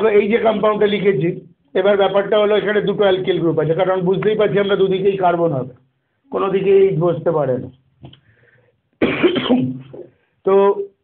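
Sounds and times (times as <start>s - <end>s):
man coughing: 9.0s - 10.2s.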